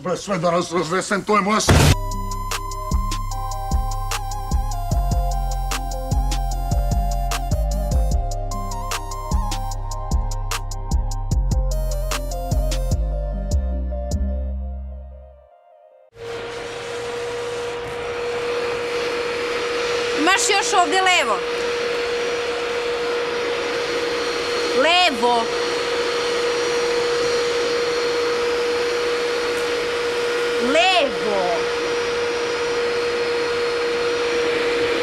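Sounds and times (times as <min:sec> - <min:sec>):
vacuum cleaner running: 0:01.6 - 0:12.9, 0:16.1 - 0:35.0
small electric machine whining: 0:01.9 - 0:11.1, 0:16.2 - 0:35.0
loud rushing hiss: 0:16.2 - 0:35.0.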